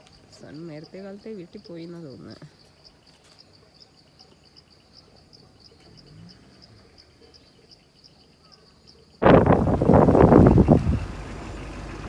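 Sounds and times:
wind buffeting microphone: 9.2 - 12.0.

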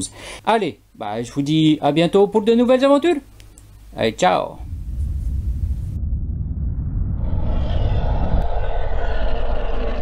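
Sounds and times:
deep rumbling roar: 4.6 - 10.0.

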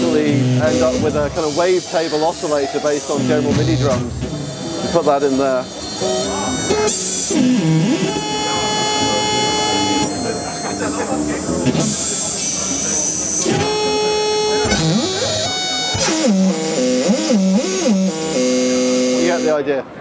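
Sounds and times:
pitched synth tones with bends: 0.0 - 19.6.

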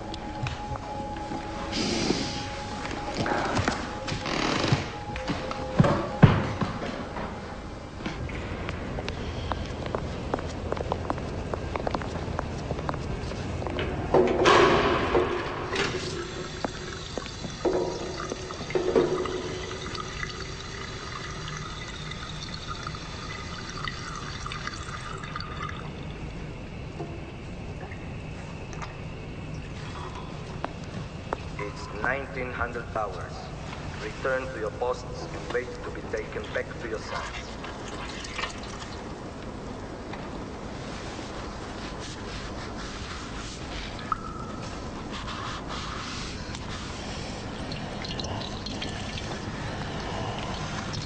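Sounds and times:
music: 0.0 - 17.2
rushing water: 15.7 - 26.0.

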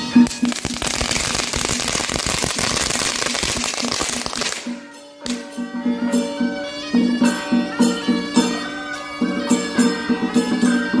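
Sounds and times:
firecrackers crackling: 0.0 - 5.6.

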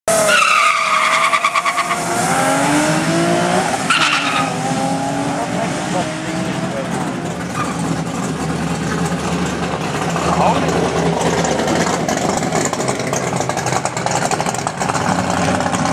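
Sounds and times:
car engine accelerating hard: 0.2 - 15.9.

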